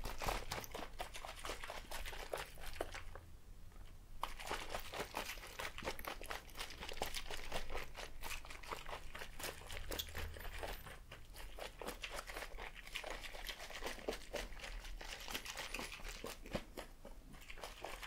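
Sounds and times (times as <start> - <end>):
liquid sloshing in plastic cup: 0.0 - 3.2, 4.2 - 18.0.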